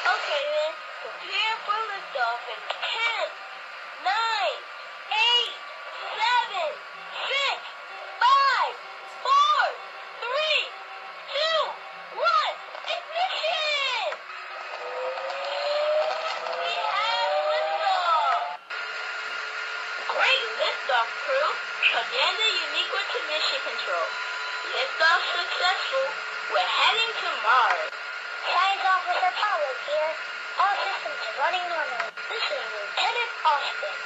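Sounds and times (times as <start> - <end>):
rising tone: 14.4 - 18.6.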